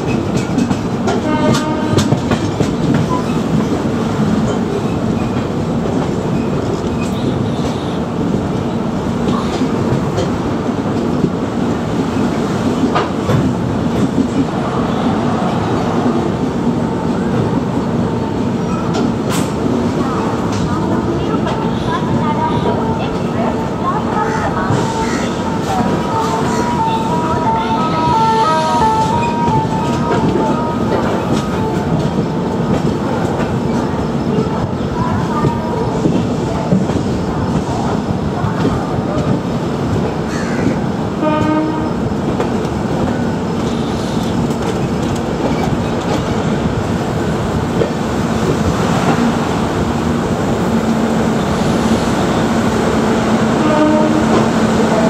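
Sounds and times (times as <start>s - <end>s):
train wheels rumbling on rail: 0.0s - 55.0s.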